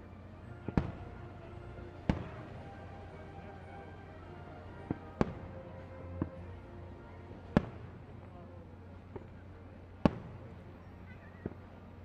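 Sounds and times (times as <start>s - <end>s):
fireworks bursting: 0.6s - 3.2s, 4.6s - 6.5s, 7.3s - 8.2s, 9.0s - 10.6s.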